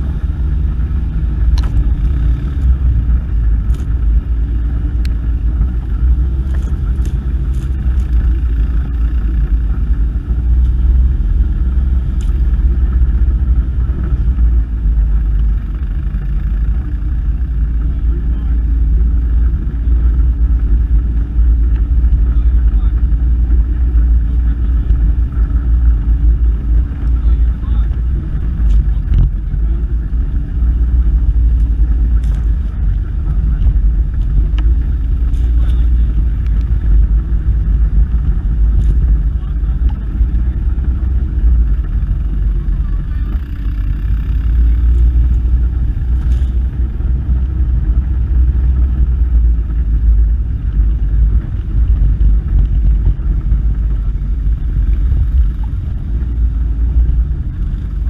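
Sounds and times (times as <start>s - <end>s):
quad engine running: 0.0s - 58.0s.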